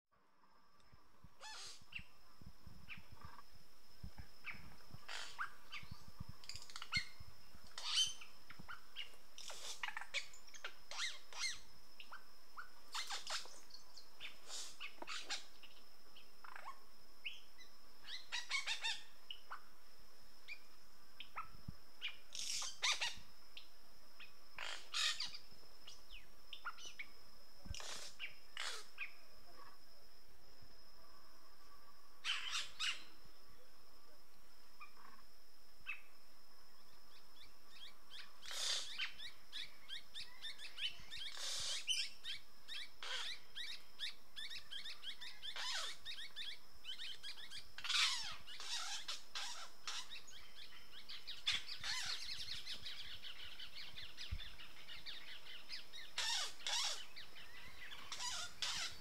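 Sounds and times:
steady high-pitched whine: 0.2 - 59.0
birds chirping and squawking: 1.4 - 2.1, 4.4 - 15.8, 18.1 - 19.6, 21.3 - 23.2, 24.6 - 25.4, 27.7 - 29.1, 32.2 - 33.1, 37.7 - 59.0.

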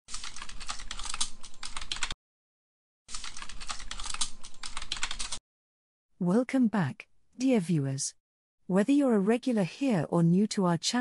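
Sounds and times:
rapid keyboard typing clicks: 0.1 - 2.2, 3.1 - 5.4.

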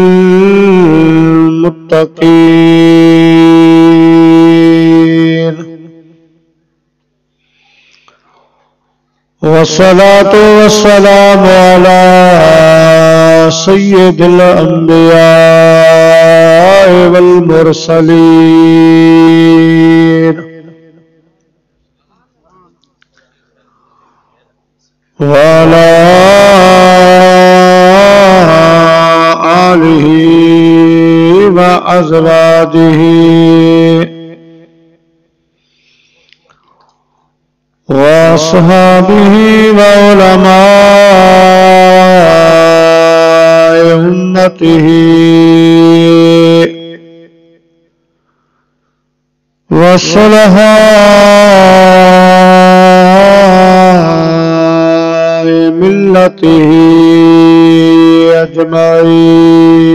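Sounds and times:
man chanting: 0.0 - 6.5, 7.5 - 21.4, 22.0 - 35.1, 37.8 - 47.8, 49.6 - 59.9.

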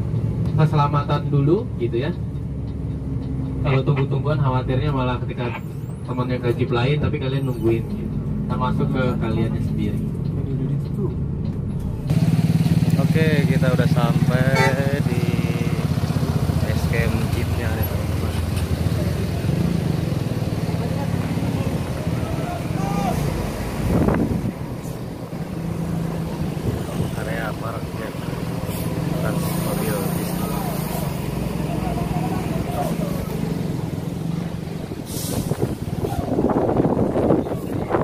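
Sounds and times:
coach engine low drone: 7.9 - 38.0
air brake hisses: 35.0 - 35.7.

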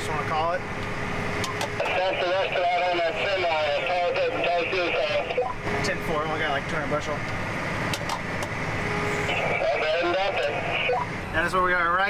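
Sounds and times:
combine harvester hum in cab: 0.0 - 12.0
muffled voice: 1.8 - 5.5, 9.3 - 11.0.

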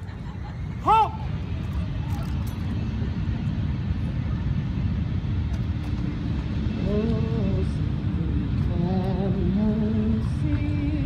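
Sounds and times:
jet aircraft rumble: 0.0 - 11.0.

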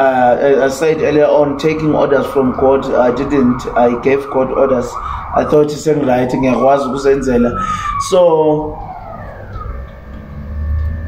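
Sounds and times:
low rumble: 0.0 - 11.0
siren wailing: 0.0 - 11.0.

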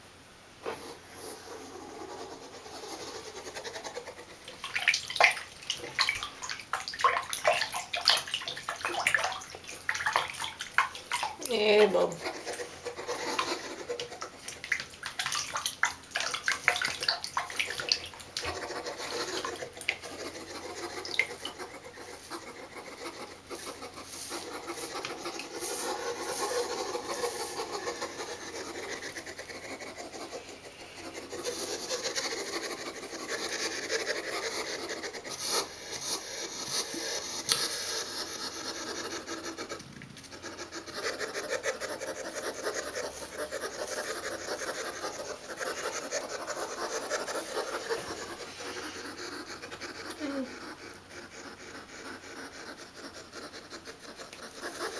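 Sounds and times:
toothbrush scrubbing quills: 1.3 - 54.9.

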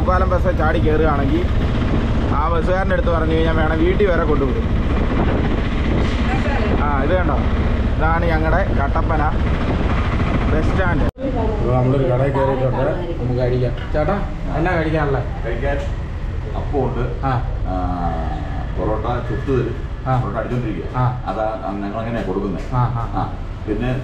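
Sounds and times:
auto-rickshaw engine rumbling: 0.0 - 24.0.

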